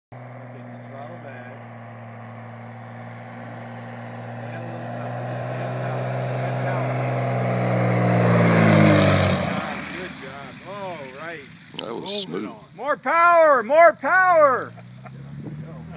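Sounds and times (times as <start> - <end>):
propeller airplane engine droning: 0.1 - 15.9.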